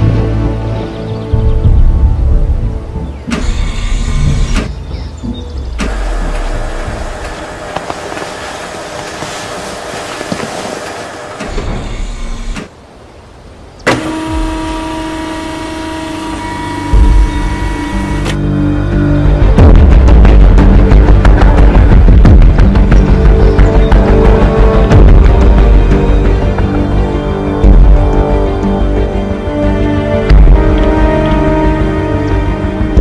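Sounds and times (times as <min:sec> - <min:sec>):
electric motor and servo whirs: 0:13.9 - 0:18.4
soundtrack music: 0:16.1 - 0:33.0.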